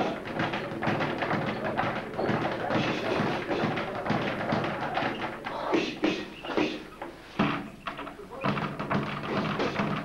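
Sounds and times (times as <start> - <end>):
speed bag thudding: 0.0 - 6.2.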